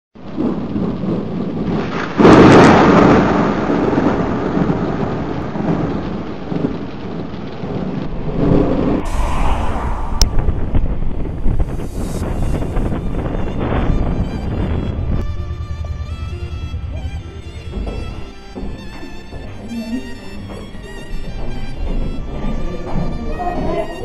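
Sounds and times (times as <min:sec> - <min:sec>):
steady rain: 0:00.2 - 0:09.2, 0:10.7 - 0:24.0
thunder rolling: 0:00.2 - 0:24.0.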